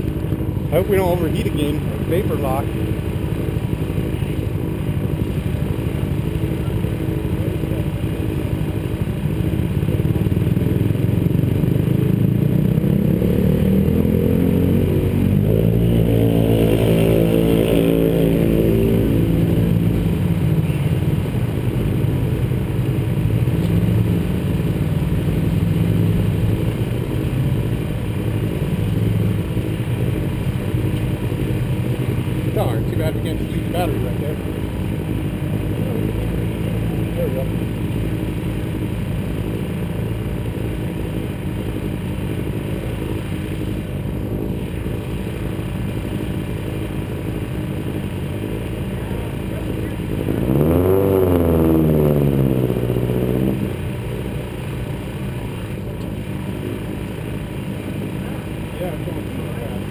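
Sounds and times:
engine running steadily: 0:00.0 - 0:59.9
vehicle engine revving past: 0:50.3 - 0:53.8.

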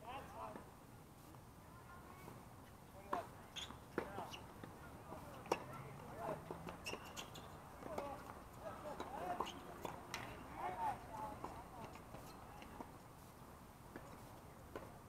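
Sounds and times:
faint distant voices: 0:00.0 - 0:15.0
tennis balls struck and bouncing: 0:03.0 - 0:10.4.

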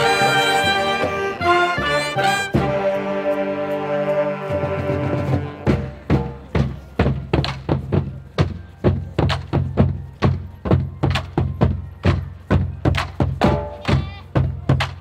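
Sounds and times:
marching drumline playing: 0:00.0 - 0:15.0.

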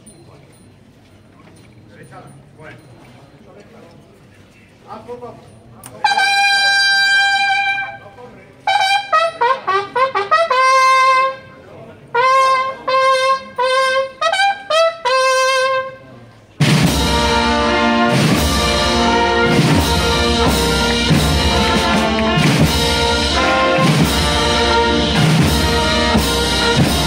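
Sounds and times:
trumpet fanfare: 0:06.0 - 0:08.0, 0:08.7 - 0:16.0, 0:16.6 - 0:27.0
wind band playing march: 0:06.0 - 0:27.0.

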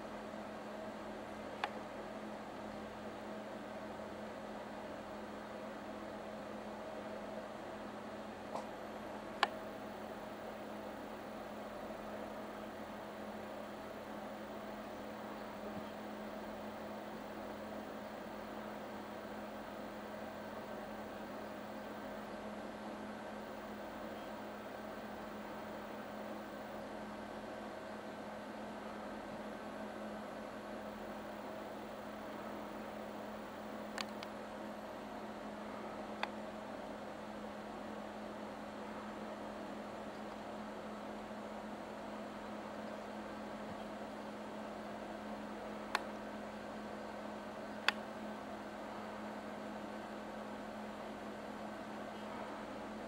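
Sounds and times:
constant low hum: 0:00.0 - 0:53.0
steady hiss: 0:00.0 - 0:53.0.

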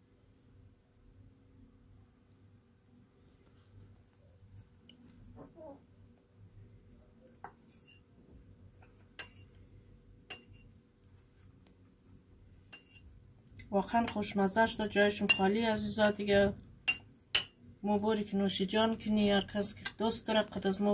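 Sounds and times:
metal spoon clinking ceramic bowl: 0:09.2 - 0:09.4, 0:10.3 - 0:10.7, 0:12.7 - 0:13.1, 0:16.9 - 0:17.5.

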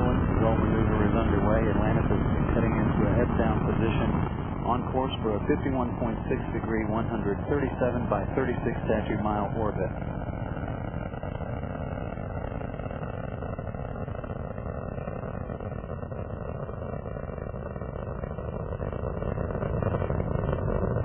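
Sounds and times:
rocket engines roaring: 0:00.0 - 0:21.0.

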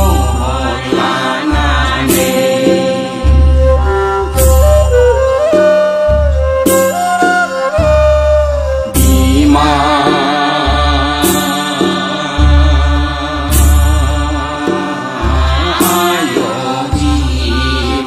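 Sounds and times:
cymbal crash: 0:00.0 - 0:03.7
heavy drum beat: 0:00.0 - 0:18.0.

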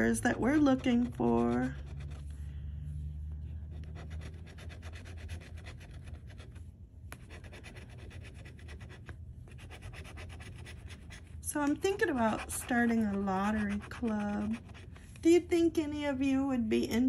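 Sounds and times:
scraping scratch-off ticket: 0:00.0 - 0:02.3, 0:11.5 - 0:15.4.

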